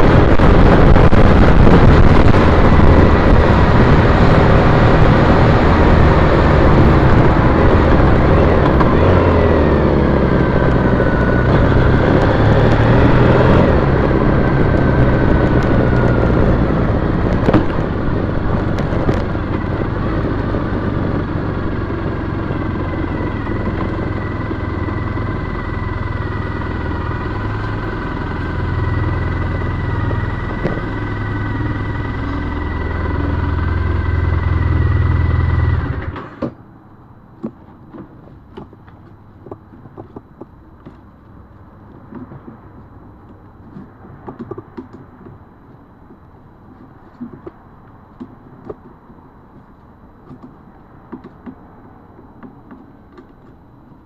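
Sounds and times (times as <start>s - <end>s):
motorcycle engine running: 0.0s - 36.2s
road and wind noise: 0.0s - 54.0s.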